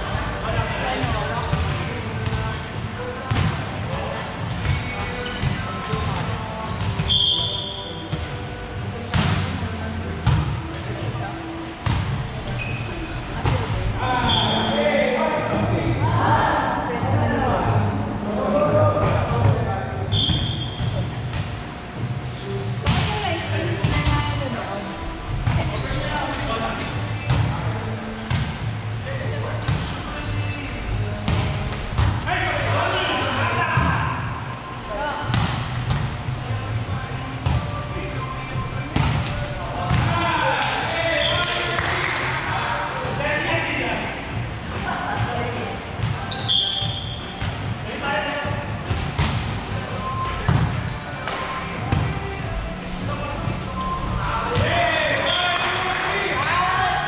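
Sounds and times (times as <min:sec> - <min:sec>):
volleyball hits: 0:31.2 - 0:32.3, 0:38.9 - 0:40.2.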